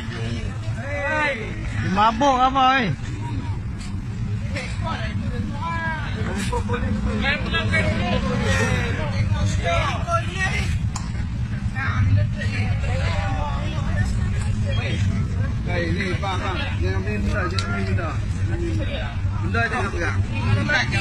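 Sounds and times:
crowd talking and calling out: 0.0s - 21.0s
low hum of vehicles: 0.0s - 21.0s.

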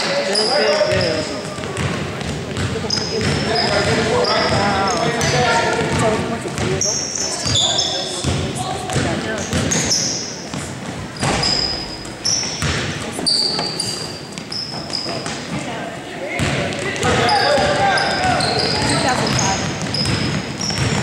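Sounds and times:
sneakers squeaking: 0.0s - 21.0s
basketball bouncing on hardwood: 1.5s - 4.7s, 12.5s - 13.0s, 17.5s - 21.0s.

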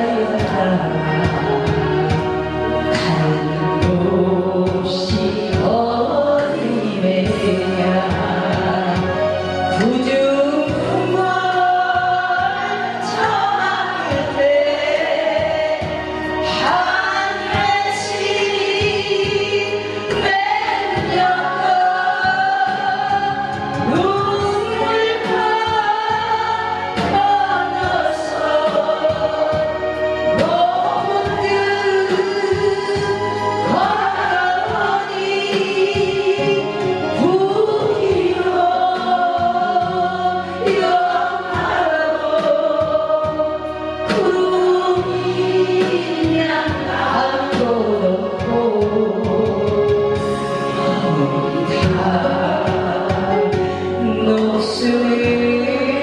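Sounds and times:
musical accompaniment: 0.0s - 56.0s
woman singing into microphone: 0.0s - 56.0s.

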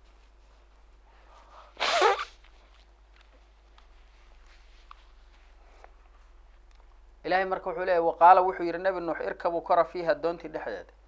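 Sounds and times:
man sneezing: 1.8s - 2.3s.

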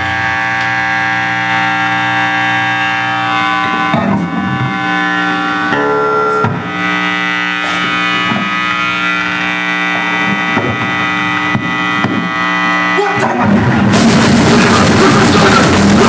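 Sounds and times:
band amplified drone: 0.0s - 16.0s
drum hits: 6.4s - 6.7s, 10.2s - 12.3s, 13.4s - 16.0s.

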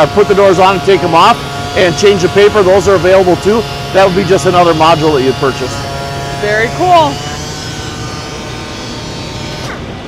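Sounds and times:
electric sander whirring: 0.0s - 10.0s
vacuum dust extraction: 0.0s - 10.0s.

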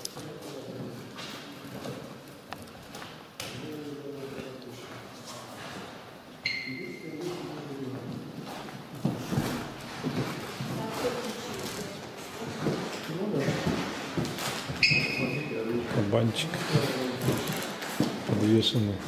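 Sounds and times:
people talking in echoing hall: 0.0s - 19.0s.

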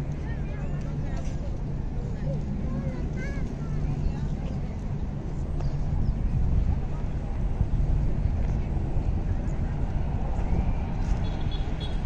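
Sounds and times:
steady low rumble: 0.0s - 11.8s
faint voices of passers-by: 0.0s - 12.0s.

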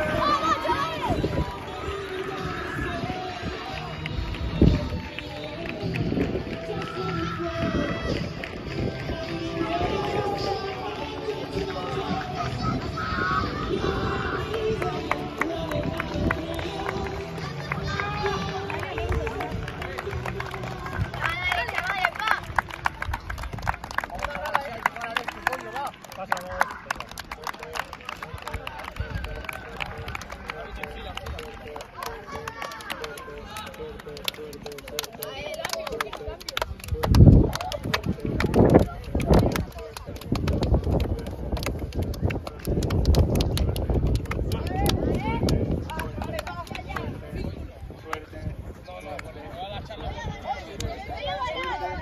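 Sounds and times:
boys' voices: 0.0s - 22.8s, 24.2s - 42.5s, 43.6s - 52.0s
hand slaps and claps: 31.8s - 47.1s.

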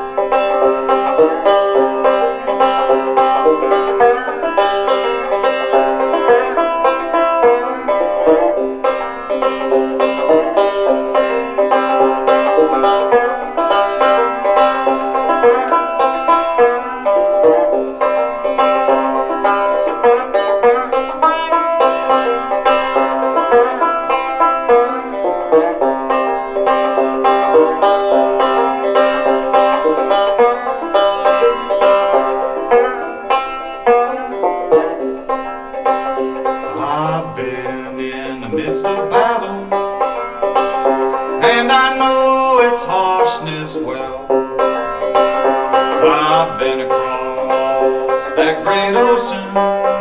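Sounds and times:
banjo plucking: 0.0s - 50.0s.

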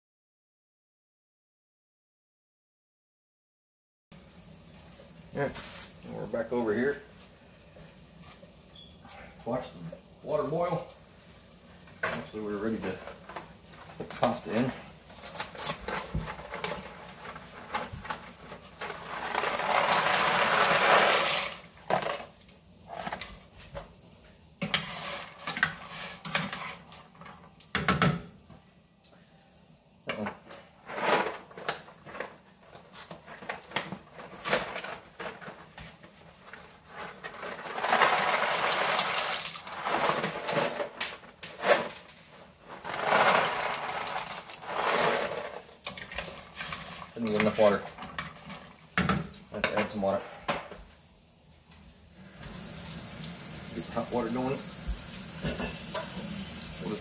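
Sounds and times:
rustling: 4.7s - 9.3s, 11.7s - 22.3s, 30.5s - 48.9s
dry pasta rattling and pouring: 18.8s - 21.6s, 36.8s - 42.0s, 42.6s - 47.8s
kitchen handling clatter: 36.5s - 50.8s.

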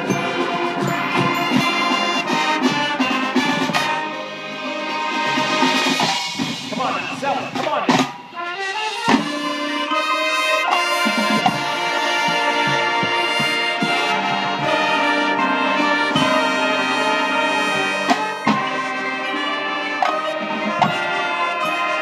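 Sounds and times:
marching band playing: 0.0s - 22.0s.

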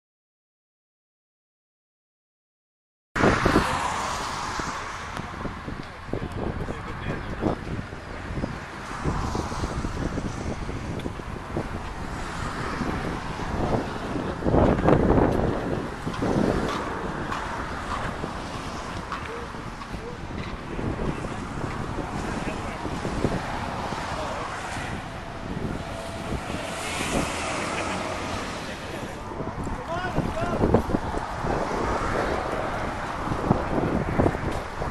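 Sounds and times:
wind buffeting microphone: 3.2s - 34.9s.

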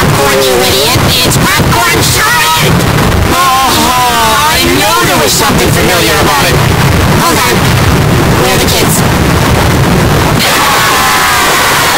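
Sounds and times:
garbled voice fragments: 0.0s - 9.1s
loud saturated noise: 0.0s - 11.9s.

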